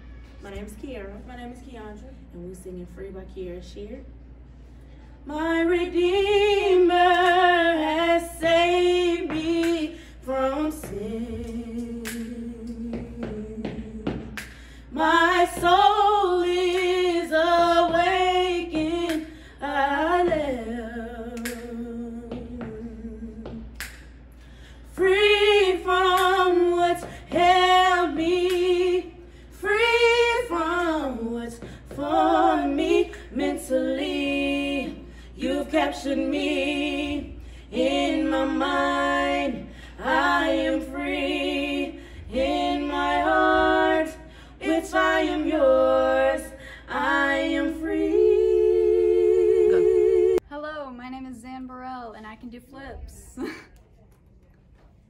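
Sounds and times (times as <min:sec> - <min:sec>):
girls singing gospel: 0:04.2 - 0:50.6.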